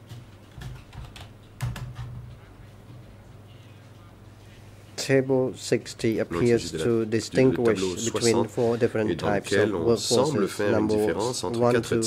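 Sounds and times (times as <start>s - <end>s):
typing on keyboard: 0.1s - 2.3s.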